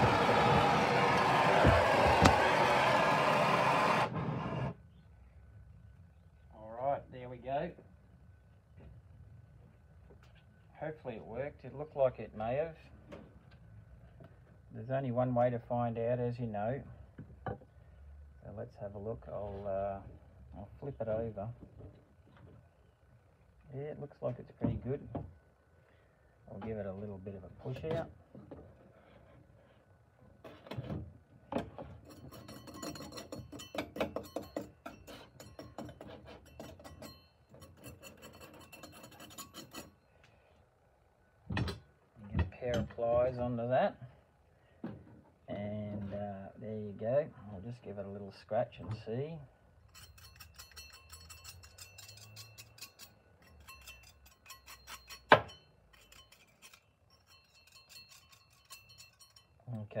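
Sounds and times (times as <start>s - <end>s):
knife scraping metal: 32.0s - 40.1s, 49.9s - 59.6s
sharp metallic clink: 49.9s - 59.6s.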